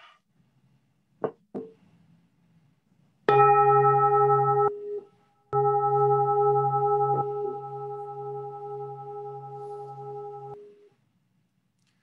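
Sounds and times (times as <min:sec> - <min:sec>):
meditation bell ringing: 0:03.3 - 0:10.8.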